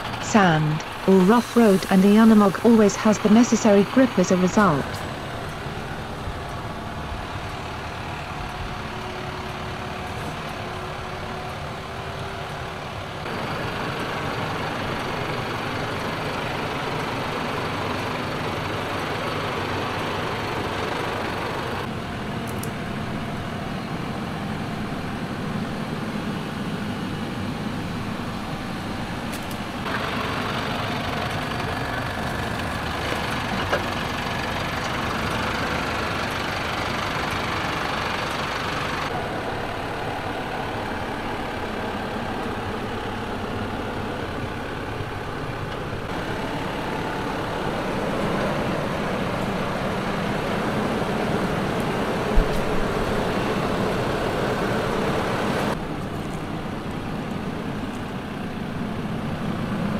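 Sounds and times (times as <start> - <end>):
diesel truck engine under load: 0.0 - 59.9.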